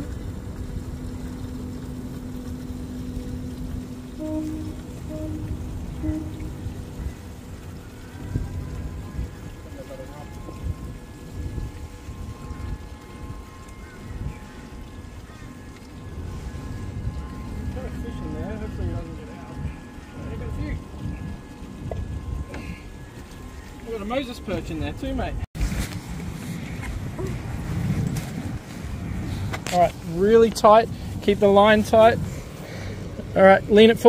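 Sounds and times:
wind and water rumble: 0:00.0 - 0:34.0
short beeps: 0:04.2 - 0:07.2.

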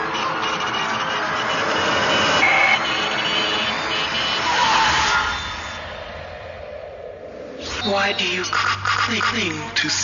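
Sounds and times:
rising tone: 0:04.6 - 0:09.1
drum and bass music: 0:07.5 - 0:10.0.

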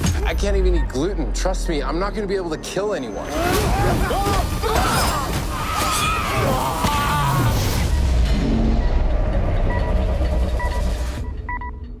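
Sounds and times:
short electronic beeps: 0:07.7 - 0:12.0.

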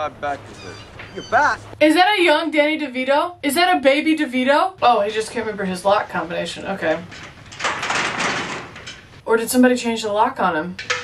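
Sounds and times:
locker door and padlock rattling: 0:06.7 - 0:09.2, 0:10.8 - 0:11.0.

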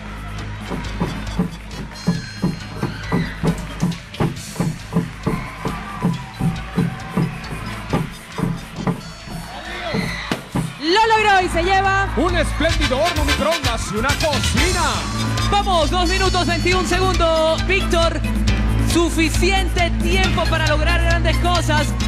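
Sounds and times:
background music: 0:00.0 - 0:22.0.

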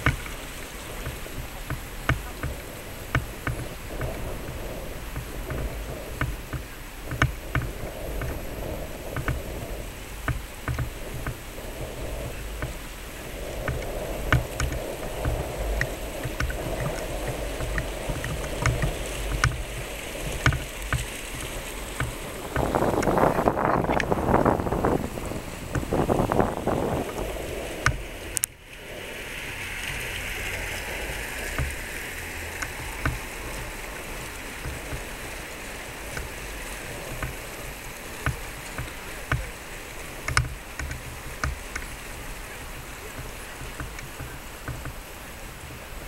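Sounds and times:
low outdoor rumble: 0:00.0 - 0:46.0
rushing noise: 0:00.0 - 0:46.0
steady hiss: 0:00.0 - 0:46.0
light clicks: 0:40.2 - 0:42.1.

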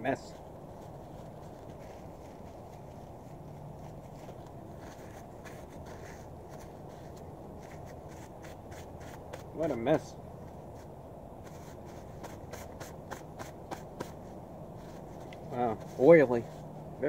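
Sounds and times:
low background hum: 0:00.0 - 0:17.0
paper napkin rustling: 0:00.2 - 0:16.9.

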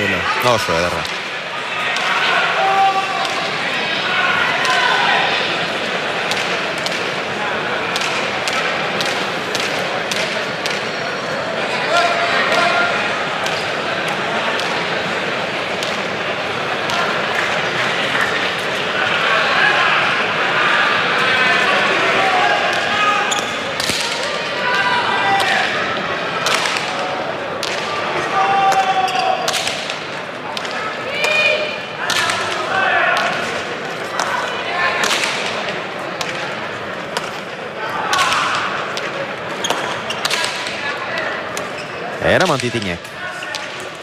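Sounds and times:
crowd voices: 0:00.0 - 0:44.0.

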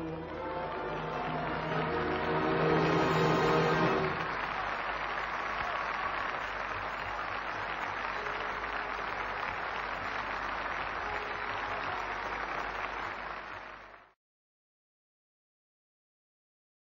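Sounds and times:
audience applauding: 0:00.0 - 0:14.2.

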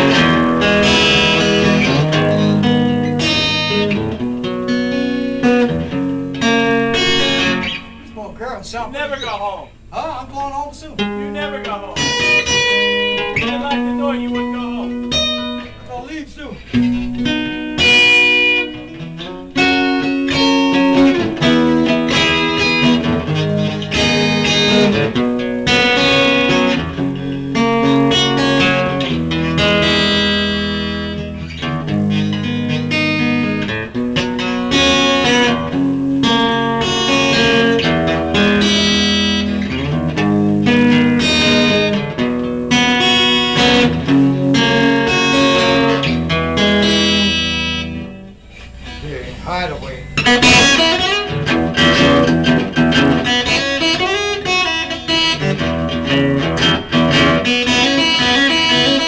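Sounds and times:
electric guitar: 0:00.0 - 0:08.2, 0:11.0 - 0:59.0.

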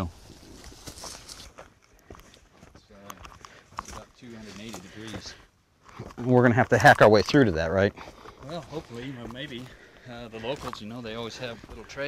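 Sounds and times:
faint footsteps: 0:00.0 - 0:12.0
dry leaves rustling: 0:00.2 - 0:01.7.

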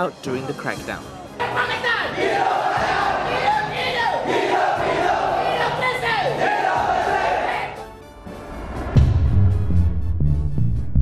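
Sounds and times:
crowd shouting and cheering: 0:01.4 - 0:07.8.

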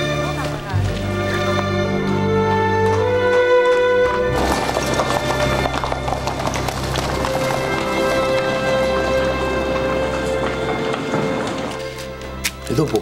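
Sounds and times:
background music with long notes: 0:00.0 - 0:13.0
horse hooves clip-clopping on street: 0:00.0 - 0:13.0.

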